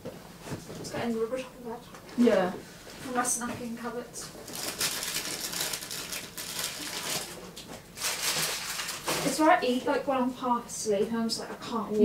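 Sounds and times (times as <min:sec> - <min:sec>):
plastic bag rustling: 0:04.4 - 0:09.8.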